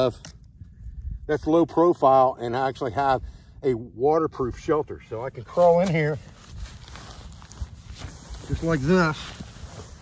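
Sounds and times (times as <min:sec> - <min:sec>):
rustling on grass and pad: 0:05.2 - 0:10.0.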